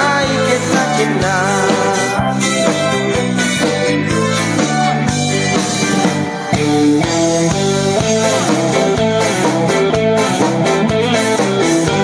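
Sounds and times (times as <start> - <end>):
live band instrumental music: 0.0 - 12.0
plucked guitar melody: 0.0 - 12.0.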